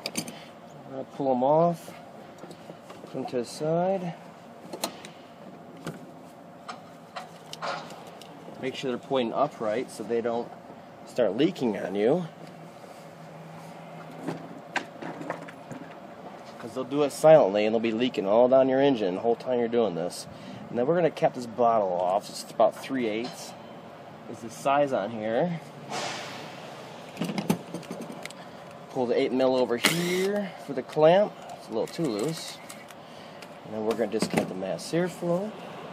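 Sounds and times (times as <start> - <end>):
hand tools clicking and knocking: 27.2 - 28.4.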